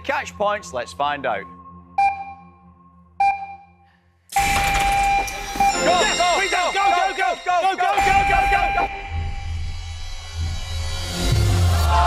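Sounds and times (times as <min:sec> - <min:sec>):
electronic bell-like ping: 0:04.4 - 0:10.2.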